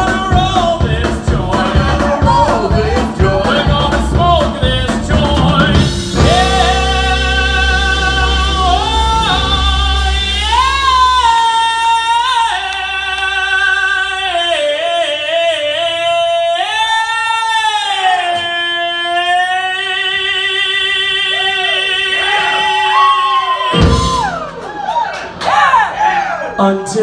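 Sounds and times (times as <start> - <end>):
band bass and drums: 0.0 - 13.1, 23.6 - 25.0
person singing high long notes: 6.2 - 16.4.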